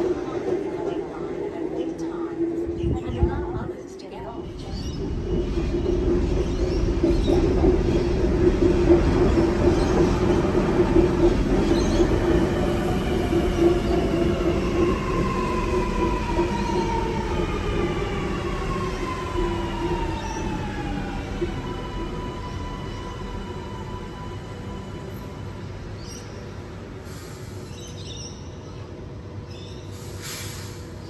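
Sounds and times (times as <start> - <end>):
train rumble: 0.0 - 31.0.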